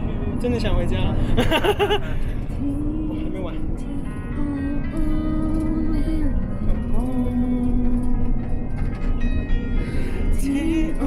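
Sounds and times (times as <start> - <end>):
coach engine rumble: 0.0 - 11.0
woman singing into microphone: 2.5 - 8.5, 10.3 - 11.0.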